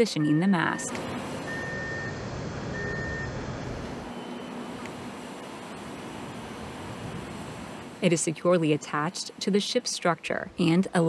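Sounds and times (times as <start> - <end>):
crane warning alarm beeping: 0.0 - 4.9.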